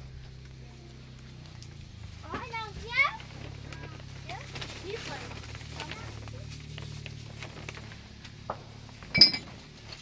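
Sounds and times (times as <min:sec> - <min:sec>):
steady low hum: 0:00.0 - 0:10.0
plastic wrapper rustling: 0:03.1 - 0:08.2.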